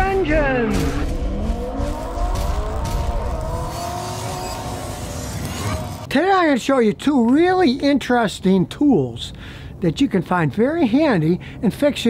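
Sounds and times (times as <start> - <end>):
car engine revving: 0.5 - 6.1.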